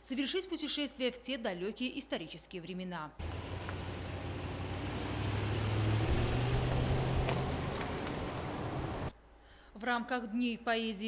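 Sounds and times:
suv engine rumble: 3.2 - 9.1
tyre and road noise: 3.2 - 9.1.

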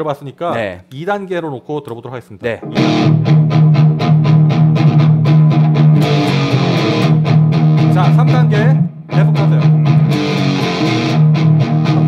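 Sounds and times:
bright guitar strum: 2.6 - 12.0
overdriven electric guitar picking: 2.6 - 12.0.

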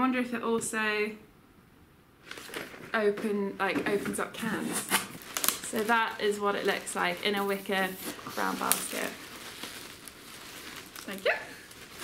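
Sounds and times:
wrapping rustling and crinkling: 2.2 - 12.0.

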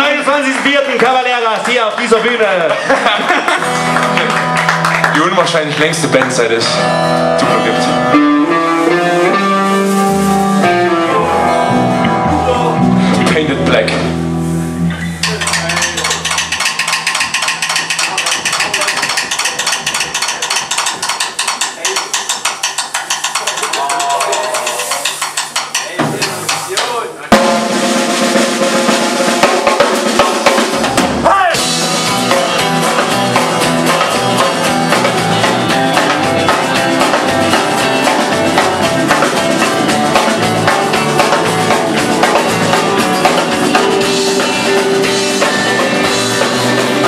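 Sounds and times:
drum kit beat: 0.0 - 47.0
live rock band playing: 0.0 - 47.0.

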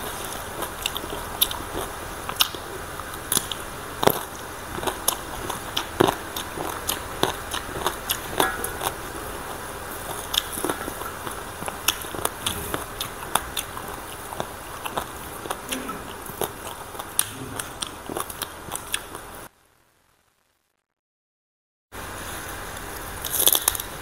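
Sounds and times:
crunching raw vegetables: 0.0 - 19.5, 22.1 - 24.0.

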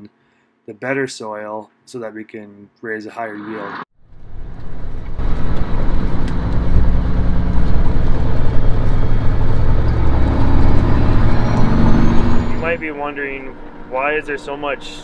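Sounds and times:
truck diesel engine rumbling: 4.4 - 15.0.

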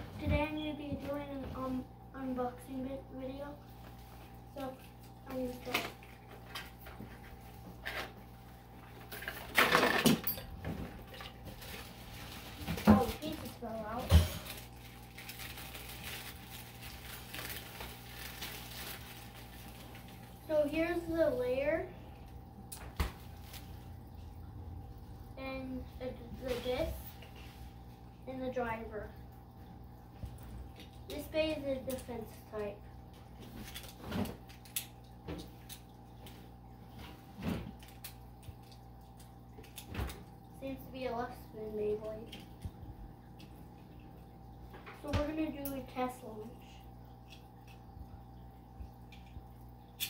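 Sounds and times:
faint steady hum: 0.0 - 50.0
wrapping paper rustling: 11.5 - 20.4.

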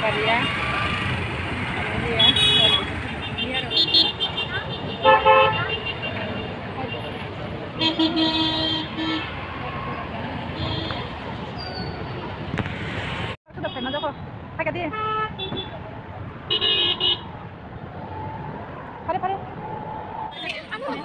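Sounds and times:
passing vehicles: 0.0 - 21.0
voices: 20.1 - 21.0.

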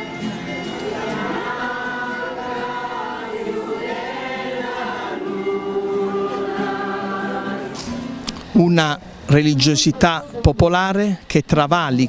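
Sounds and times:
choir singing a slow hymn: 0.0 - 8.3.

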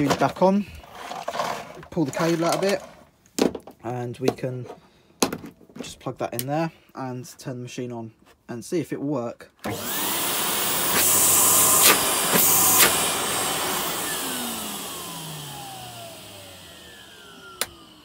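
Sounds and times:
vacuum cleaner motor whining: 9.6 - 18.0.

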